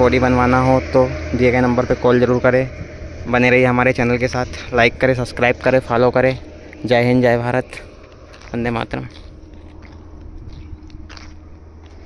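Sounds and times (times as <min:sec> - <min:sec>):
low steady background rumble: 0:00.0 - 0:12.0
footsteps on gravel: 0:07.6 - 0:12.0.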